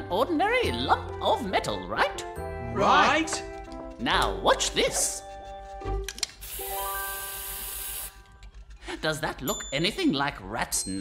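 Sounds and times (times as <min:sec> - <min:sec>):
held music notes: 0:00.0 - 0:09.7
spray paint nozzle hissing: 0:06.3 - 0:08.3.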